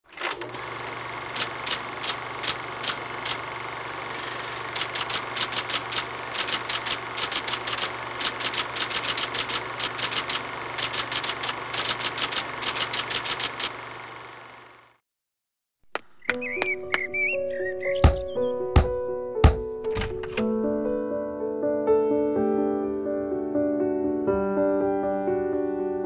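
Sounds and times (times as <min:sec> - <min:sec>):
typewriter keys striking: 0:01.3 - 0:03.5, 0:04.4 - 0:13.8, 0:18.8 - 0:20.5.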